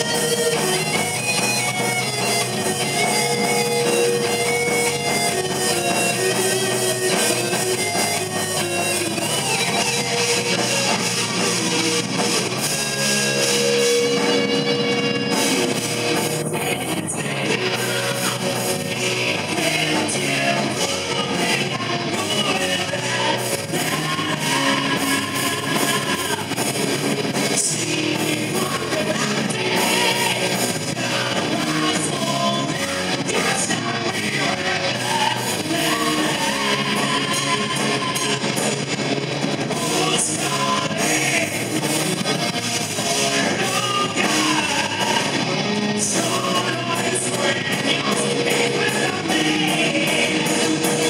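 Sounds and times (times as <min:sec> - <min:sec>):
bass guitar: 0:00.0 - 0:51.0
distorted electric guitars: 0:00.0 - 0:51.0
drums: 0:00.0 - 0:51.0
man singing: 0:16.4 - 0:26.7, 0:27.4 - 0:38.8, 0:39.6 - 0:41.9, 0:42.9 - 0:51.0.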